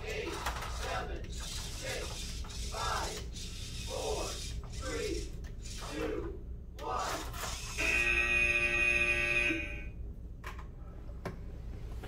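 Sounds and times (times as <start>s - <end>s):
electronic buzzer tone: 7.6s - 9.9s.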